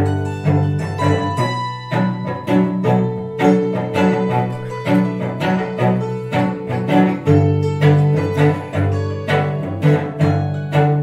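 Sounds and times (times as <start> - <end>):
hammered dulcimer notes: 0.0 - 11.0
sustained low notes: 0.0 - 11.0.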